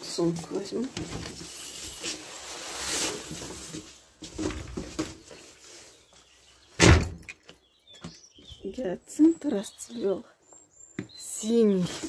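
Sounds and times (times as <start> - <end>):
door banging shut: 6.8 - 7.4.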